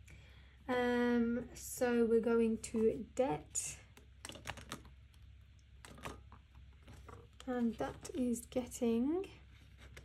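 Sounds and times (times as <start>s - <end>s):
binder pages turning: 9.6s - 10.0s.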